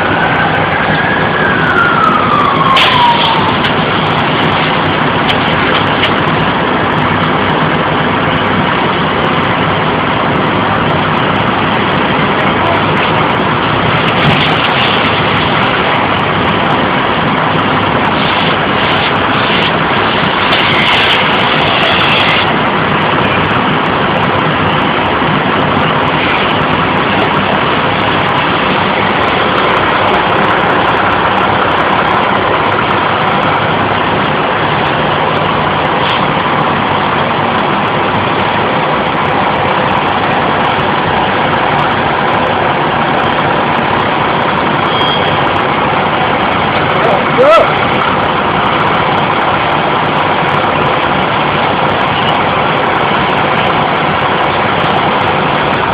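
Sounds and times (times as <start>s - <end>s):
diesel engine running at high revs: 0.0s - 55.9s.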